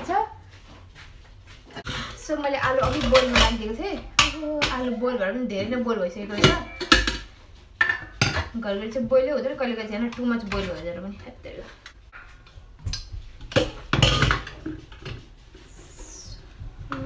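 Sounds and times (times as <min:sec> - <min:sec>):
metal pots clattering: 0:02.4 - 0:15.4.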